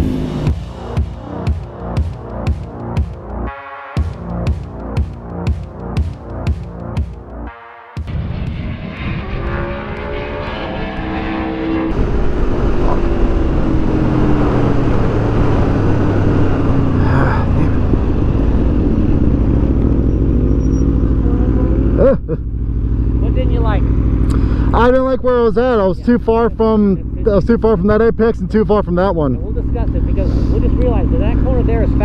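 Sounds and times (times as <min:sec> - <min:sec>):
motorcycle engine revving: 0:00.0 - 0:32.0
wind rush: 0:08.1 - 0:20.3.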